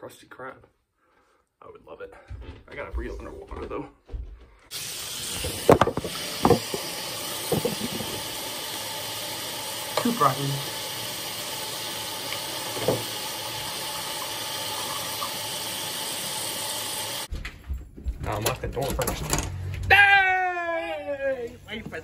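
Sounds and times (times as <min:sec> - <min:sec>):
water running from a sink tap: 0:04.7 - 0:17.3.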